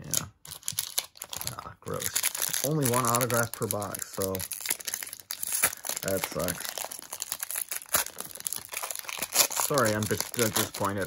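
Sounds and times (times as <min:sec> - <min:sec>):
foil wrapper tearing and crinkling: 0:00.1 - 0:11.0.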